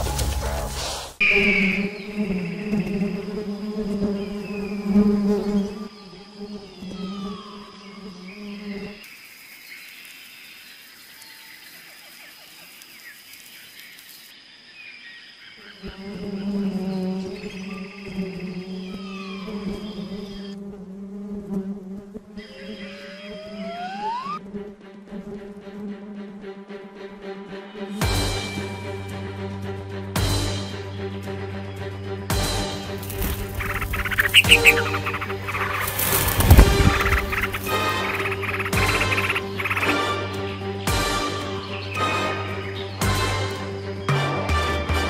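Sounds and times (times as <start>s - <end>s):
bees buzzing: 0.0s - 14.2s, 15.6s - 28.4s, 31.0s - 44.3s
rising tone: 23.0s - 24.4s.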